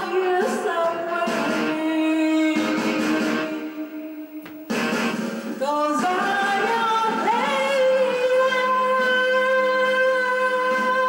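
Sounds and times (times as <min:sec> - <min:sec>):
woman singing into a microphone: 0:00.0 - 0:04.1, 0:05.6 - 0:11.0
backing track music: 0:00.0 - 0:11.0.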